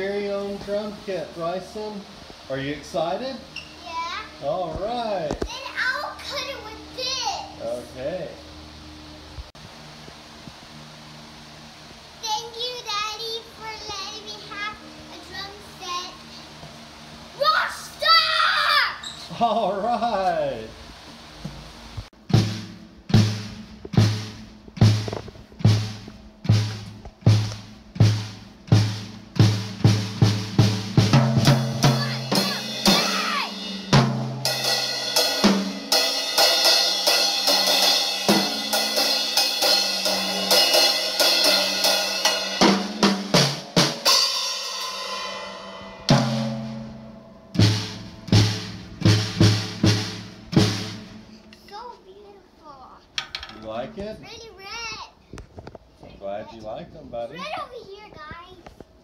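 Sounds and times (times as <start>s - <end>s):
drum strikes: 21.4s - 51.7s, 53.2s - 54.0s
cymbal crashing: 22.3s - 51.5s.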